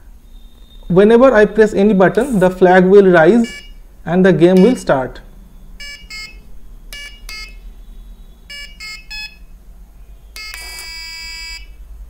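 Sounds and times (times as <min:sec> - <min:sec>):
buzzer short beeps: 0:03.4 - 0:03.8, 0:04.6 - 0:04.9, 0:05.8 - 0:07.6, 0:08.5 - 0:09.5, 0:10.4 - 0:11.8
long steady buzzer tone: 0:05.8 - 0:09.6, 0:10.3 - 0:11.9.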